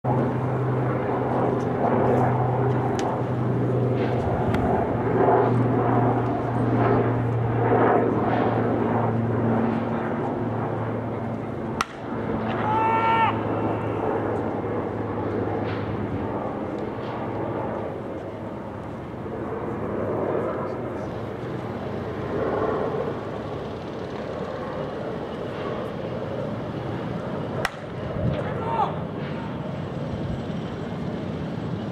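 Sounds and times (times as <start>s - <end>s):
low mechanical drone: 0.1s - 31.9s.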